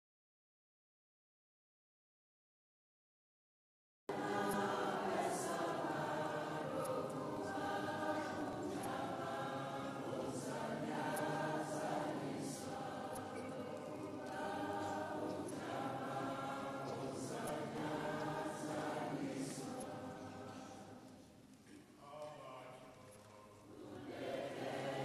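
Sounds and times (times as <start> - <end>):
choir singing: 4.1 - 21.3, 23.6 - 25.0.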